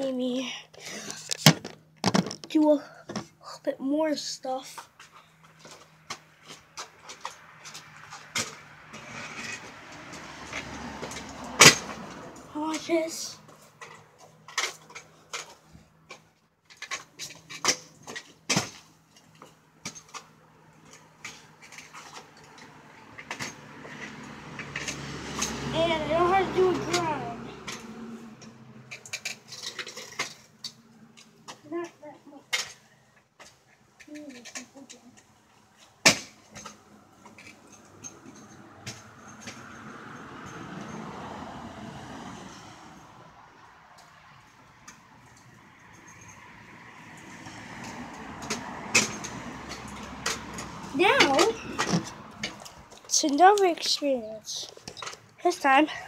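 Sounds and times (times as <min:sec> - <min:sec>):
kick scooter clattering: 0:04.7 - 0:27.9, 0:33.4 - 0:41.1, 0:47.2 - 0:56.0.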